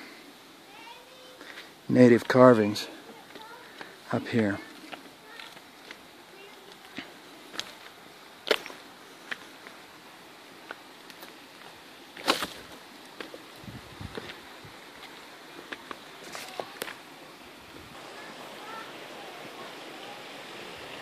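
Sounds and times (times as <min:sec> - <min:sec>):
faint steady hiss: 0:00.0 - 0:21.0
footsteps on loose rock: 0:04.7 - 0:09.4, 0:10.7 - 0:14.4, 0:15.0 - 0:17.0
twigs snapping: 0:12.2 - 0:12.7.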